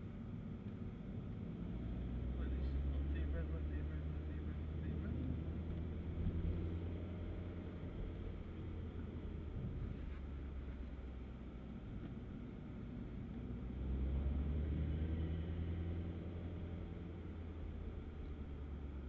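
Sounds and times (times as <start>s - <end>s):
car engine running: 0.0s - 19.0s
tyre and road noise: 0.0s - 19.0s.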